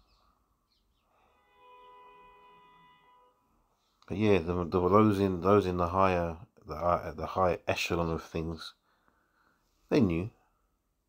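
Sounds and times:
faint held chord tone: 0:00.0 - 0:05.8.

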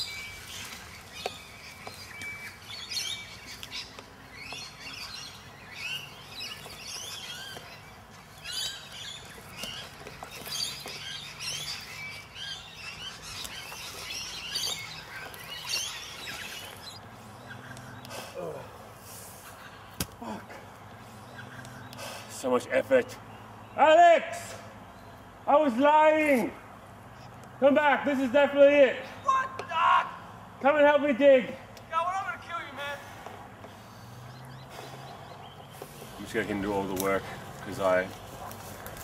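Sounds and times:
birds chirping: 0:00.0 - 0:39.0.

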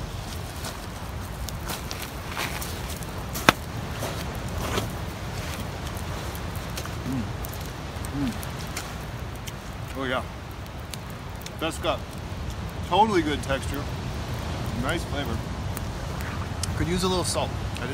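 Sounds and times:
faint crackles: 0:00.0 - 0:17.9
wind: 0:00.0 - 0:17.9.

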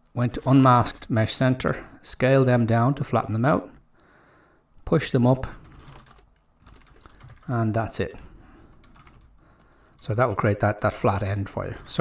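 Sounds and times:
keyboard and mouse clicks: 0:05.7 - 0:07.5.

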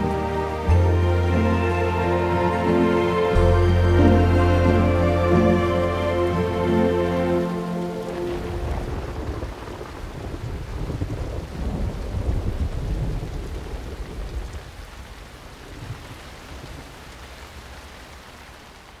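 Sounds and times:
rain falling: 0:00.0 - 0:19.0
rolling thunder rumble: 0:03.6 - 0:15.0.

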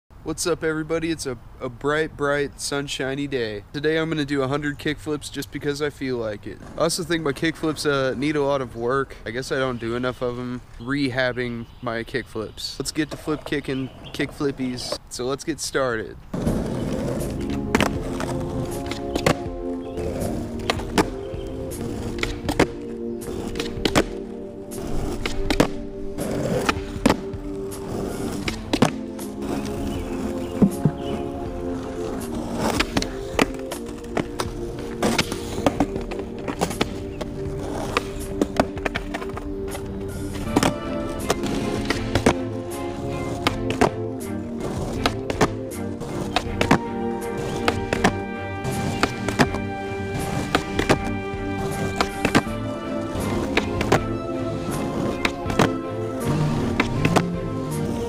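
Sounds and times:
skateboard wheels rolling: 0:03.9 - 0:10.4, 0:12.9 - 0:15.0, 0:16.3 - 0:58.0
skateboard tail popping: 0:16.3 - 0:58.0
skateboard deck slapping down: 0:16.4 - 0:24.2, 0:24.8 - 0:44.0, 0:44.6 - 0:58.0
background music: 0:16.4 - 0:58.0.

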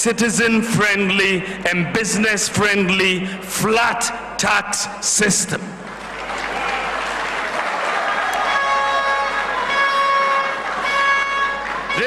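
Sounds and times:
audience applause: 0:05.9 - 0:12.0.

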